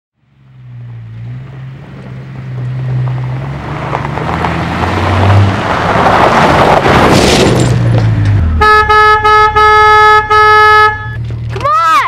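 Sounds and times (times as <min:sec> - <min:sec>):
road noise: 0:00.1 - 0:12.0
vehicle engine rumble: 0:00.2 - 0:12.0.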